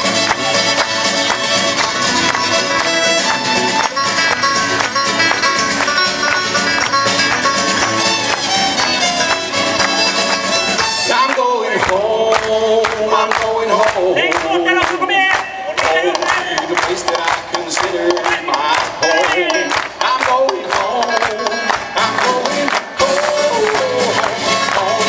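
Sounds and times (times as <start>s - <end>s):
bluegrass band playing: 0.0s - 25.0s.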